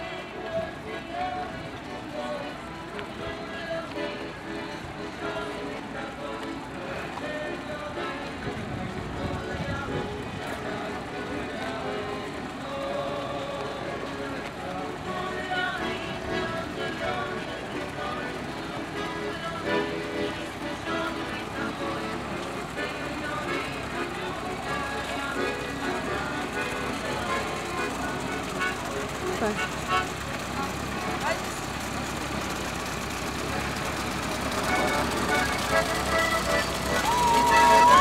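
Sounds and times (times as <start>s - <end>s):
accordion playing: 0.0s - 38.0s
crowd voices: 0.0s - 38.0s
jeep engine moving slowly: 0.0s - 38.0s
parade music: 1.0s - 31.4s, 32.9s - 38.0s.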